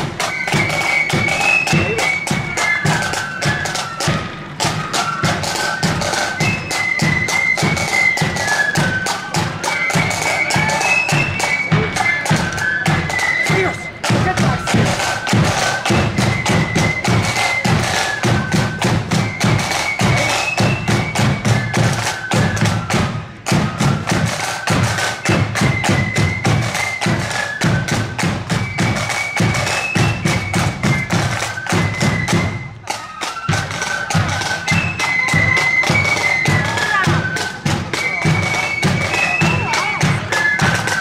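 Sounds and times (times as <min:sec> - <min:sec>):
high-pitched band melody: 0:00.0 - 0:25.7, 0:32.8 - 0:41.0
heavy marching drums: 0:00.0 - 0:41.0.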